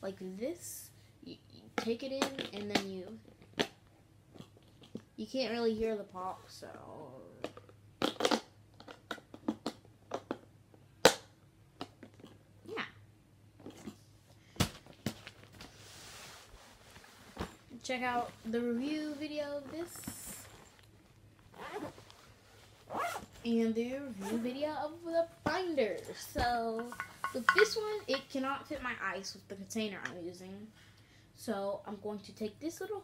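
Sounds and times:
fabric bag being handled: 15.8s - 20.8s, 21.5s - 23.5s
zipper rasping: 21.5s - 23.5s.

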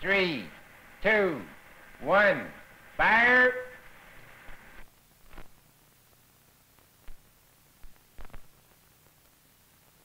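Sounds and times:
film soundtrack hiss: 0.0s - 10.0s.

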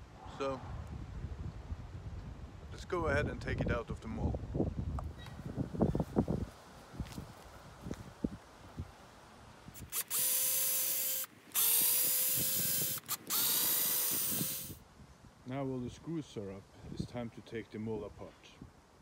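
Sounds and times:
cordless drill motor whine: 9.8s - 14.8s.

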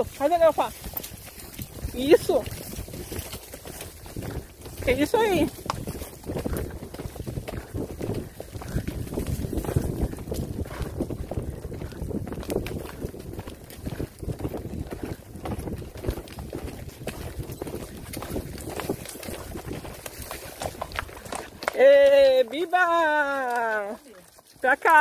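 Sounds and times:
horse hoofbeats on dirt: 0.0s - 25.0s
wind buffeting microphone: 0.7s - 21.6s.

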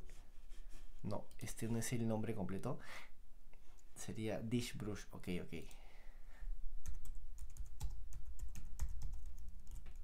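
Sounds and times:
typing on keyboard: 6.8s - 10.0s.

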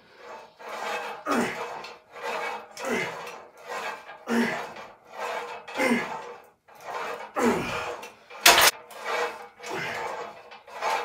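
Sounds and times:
man breathing hard: 2.7s - 3.4s, 4.2s - 4.8s, 5.7s - 6.3s, 7.3s - 8.5s, 9.6s - 10.3s
man grunting: 5.8s - 6.2s, 7.4s - 8.0s.

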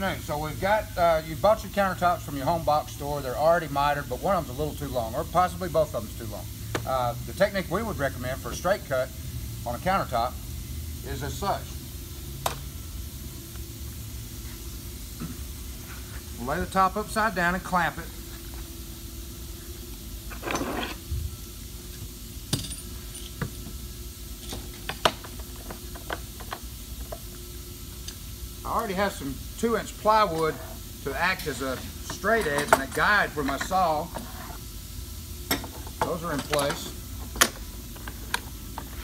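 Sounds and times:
clamp scraping: 20.3s - 21.0s
metal clamps clinking: 31.5s - 33.8s.

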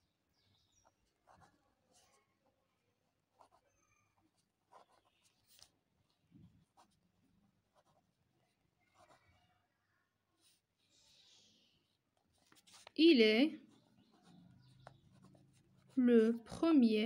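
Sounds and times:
pen scratching on paper: 0.7s - 2.4s, 3.3s - 5.8s, 6.6s - 9.4s, 10.3s - 11.1s, 11.8s - 13.0s, 13.7s - 16.6s.

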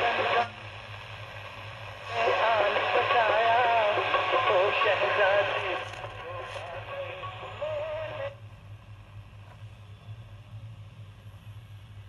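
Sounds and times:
low hum: 0.0s - 12.0s
song playing through small speaker: 2.0s - 8.4s.

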